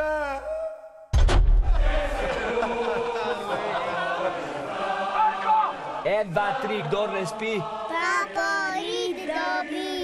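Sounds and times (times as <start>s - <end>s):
men chanting together: 1.7s - 10.0s.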